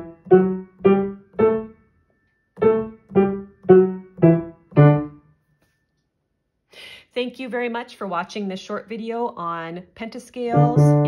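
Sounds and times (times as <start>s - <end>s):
piano staccato scale: 0.0s - 1.8s, 2.6s - 5.2s, 10.5s - 11.0s.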